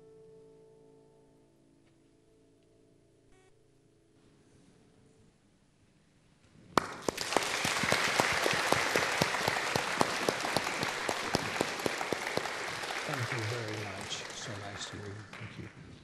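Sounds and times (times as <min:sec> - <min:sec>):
audience applause: 0:06.8 - 0:16.0
man speaking: 0:13.0 - 0:15.7.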